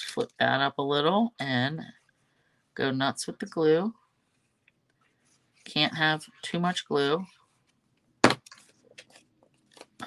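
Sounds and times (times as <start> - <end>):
sharp knock: 8.2 - 8.4.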